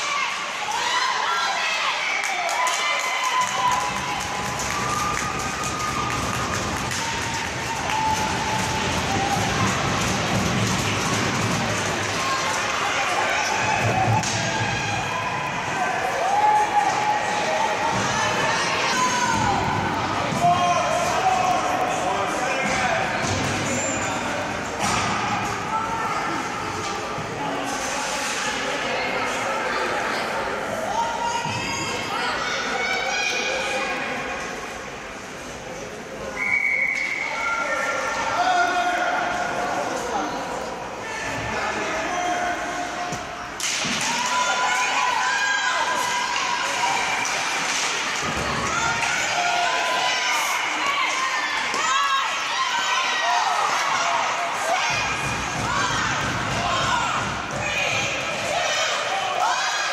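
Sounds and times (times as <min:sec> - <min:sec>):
puck and sticks knocking on boards: 0:08.1 - 0:12.1.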